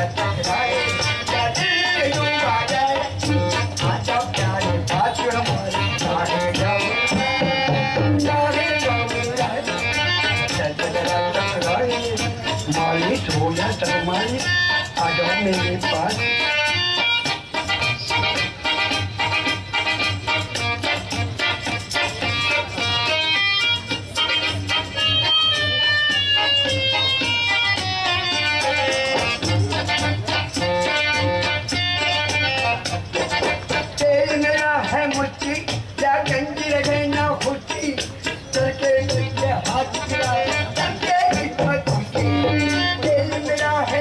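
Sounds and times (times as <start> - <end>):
harmonium melody: 0.0 - 44.0.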